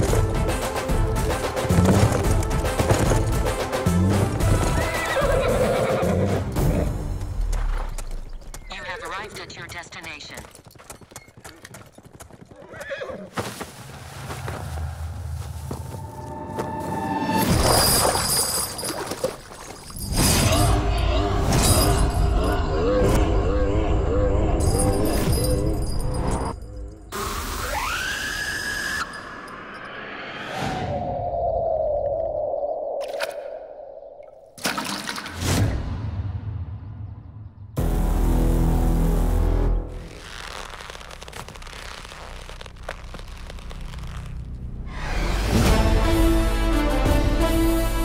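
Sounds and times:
hooves clopping: 0:00.0 - 0:14.8
horse whinnying: 0:04.6 - 0:06.4, 0:12.6 - 0:13.4.

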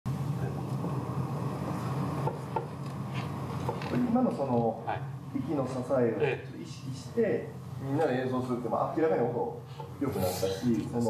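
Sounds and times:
low room noise rumble: 0:00.1 - 0:11.0.

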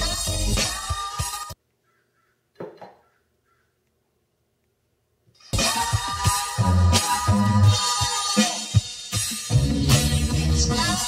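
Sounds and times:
electronic music: 0:00.0 - 0:01.6, 0:05.6 - 0:11.0.

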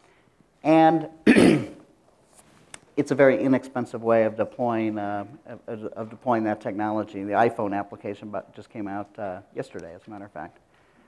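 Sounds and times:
man clearing his throat: 0:01.2 - 0:01.8.

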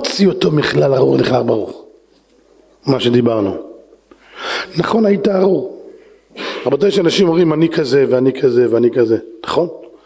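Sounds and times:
man's amplified voice: 0:00.0 - 0:02.0, 0:02.8 - 0:03.9, 0:04.6 - 0:10.0.

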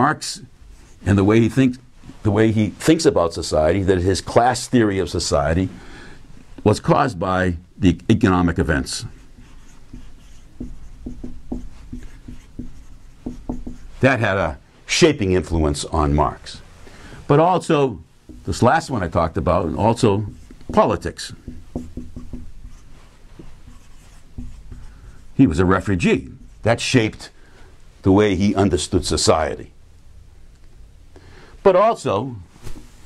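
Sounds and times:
marker writing on whiteboard: 0:08.7 - 0:14.0, 0:18.3 - 0:18.7, 0:19.3 - 0:26.7.

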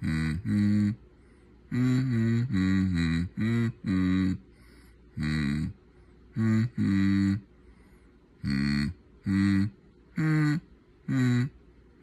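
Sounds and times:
person humming short mm: 0:00.0 - 0:01.0, 0:01.7 - 0:04.4, 0:05.2 - 0:07.5, 0:08.4 - 0:11.6.

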